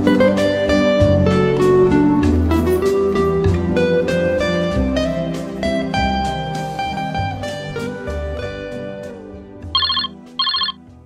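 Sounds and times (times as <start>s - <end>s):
mobile phone ringtone beeps: 9.8s - 10.8s.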